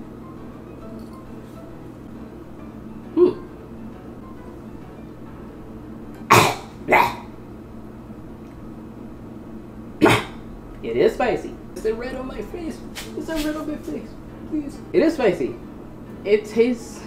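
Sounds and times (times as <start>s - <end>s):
quiet background music: 0.0s - 17.0s
person coughing: 3.2s - 3.5s, 6.3s - 7.3s, 10.0s - 10.4s.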